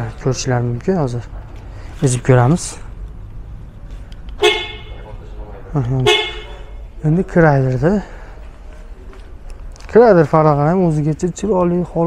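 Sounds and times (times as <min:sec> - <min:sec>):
car horn toot: 0:04.4 - 0:05.1, 0:06.0 - 0:06.9.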